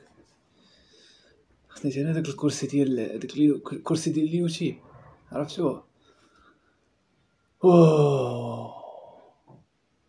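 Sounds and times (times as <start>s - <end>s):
man sighing: 7.6s - 9.6s.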